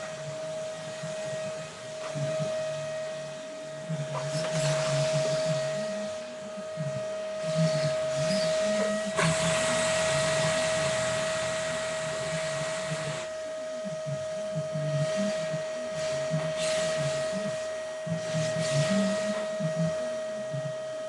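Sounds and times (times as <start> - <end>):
vacuum cleaner motor whine: 0.0 - 21.0.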